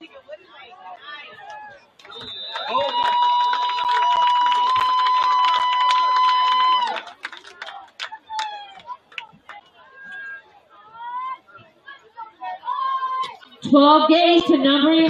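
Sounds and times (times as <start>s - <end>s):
crowd chatter: 0.0s - 3.1s, 6.6s - 15.0s.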